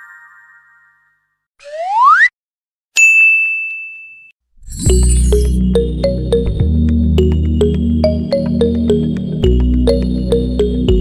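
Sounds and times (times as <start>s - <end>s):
music: 4.9s - 11.0s.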